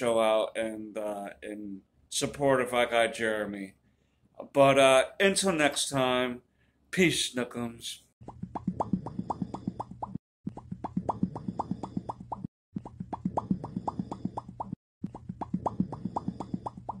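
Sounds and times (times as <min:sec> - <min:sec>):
rapid mouth pops: 0:08.2 - 0:17.0.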